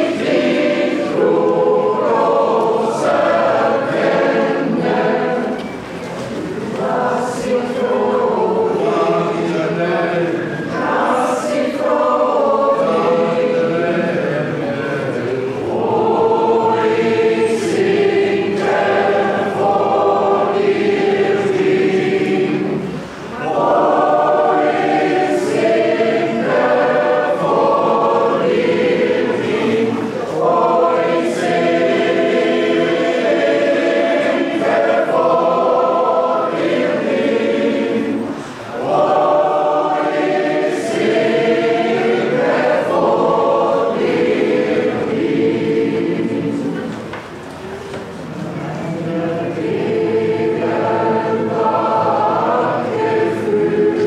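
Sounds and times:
mixed choir singing a hymn: 0.0s - 54.0s.

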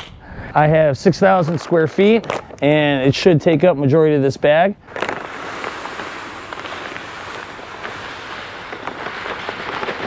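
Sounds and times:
grains ticking: 1.0s - 10.0s
granules pouring into hopper: 4.9s - 10.0s.

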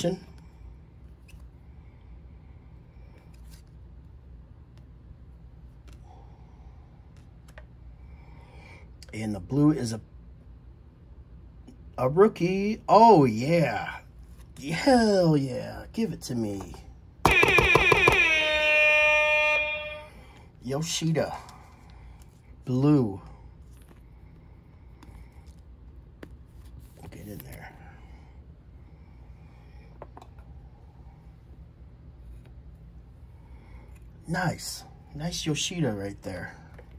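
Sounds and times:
steady low hum: 0.0s - 36.9s
air horn blasts: 17.2s - 20.5s.

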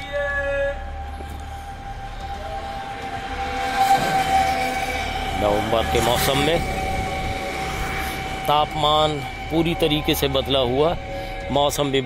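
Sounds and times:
low street rumble: 0.0s - 12.0s
lower horn tone: 0.0s - 12.0s
horn tone: 2.3s - 12.0s.

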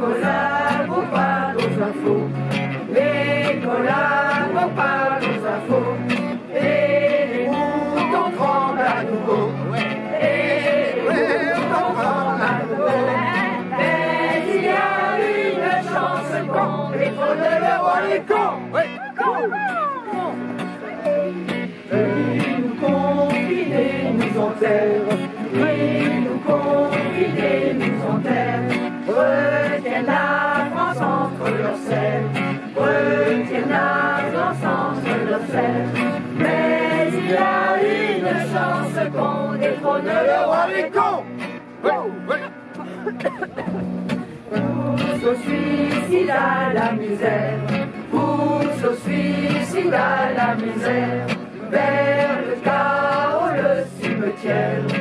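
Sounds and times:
voices singing together: 0.0s - 43.0s, 43.7s - 55.0s
acoustic guitar playing: 0.0s - 55.0s.

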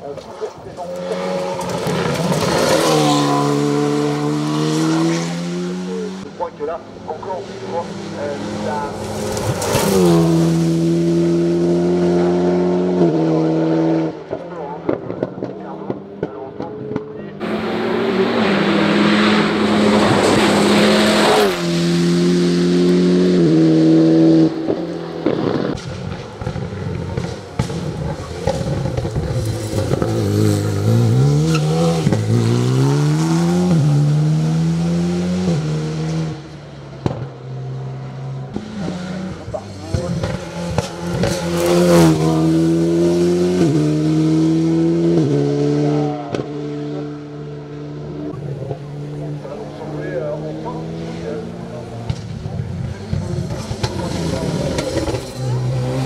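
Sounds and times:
race car engine revving through gears: 0.4s - 56.0s.

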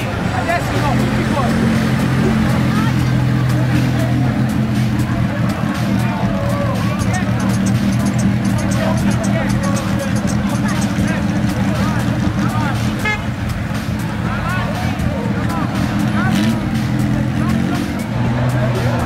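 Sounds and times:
car engines running: 0.0s - 19.0s
crowd voices: 0.0s - 19.0s.

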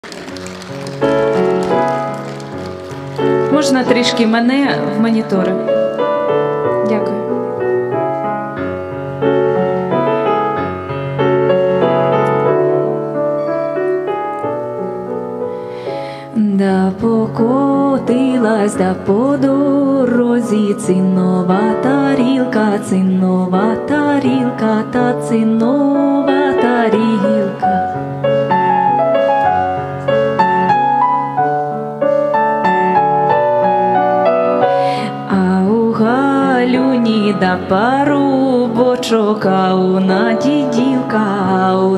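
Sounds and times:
electric piano playing folk melody: 0.0s - 41.9s
woman singing: 3.5s - 5.6s, 16.3s - 28.0s, 35.0s - 41.9s.

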